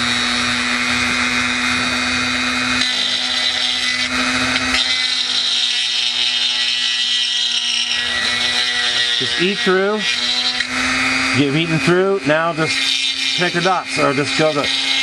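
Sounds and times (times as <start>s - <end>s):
rotary tool whining: 0.0s - 15.0s
bit grinding plastic: 1.8s - 15.0s.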